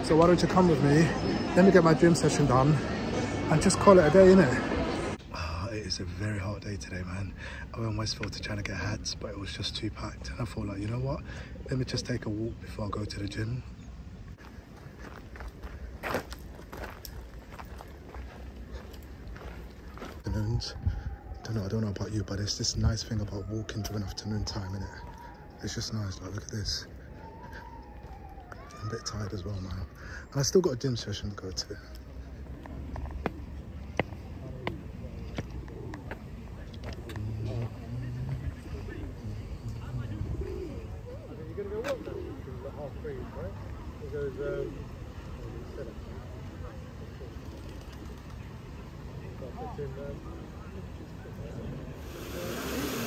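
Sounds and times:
footsteps of person walking: 14.4 - 20.2, 31.9 - 38.4
pigeons cooing: 32.5 - 42.6.

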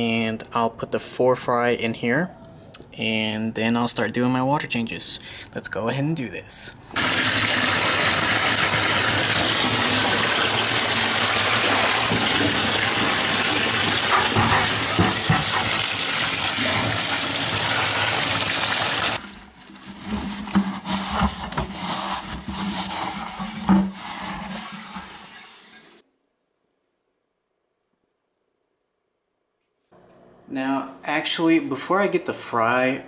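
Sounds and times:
water splashing in bucket: 7.0 - 25.8
water spraying into plastic bucket: 7.0 - 26.0.

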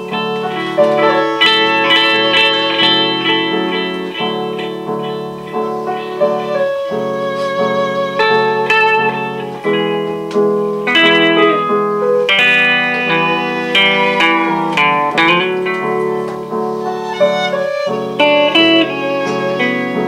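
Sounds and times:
guitar melody over chords: 0.0 - 20.0.

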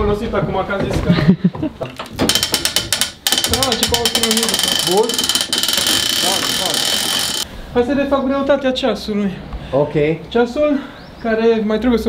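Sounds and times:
ratchet clicking of clock winding: 2.2 - 7.5.

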